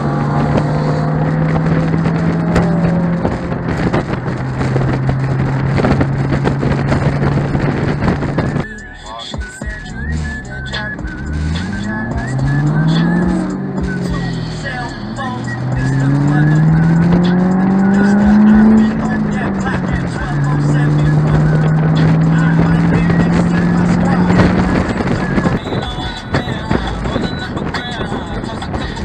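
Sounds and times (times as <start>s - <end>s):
wind noise: 0.0s - 8.7s, 11.1s - 29.0s
car engine accelerating: 0.0s - 29.0s
music from car stereo: 0.0s - 29.0s.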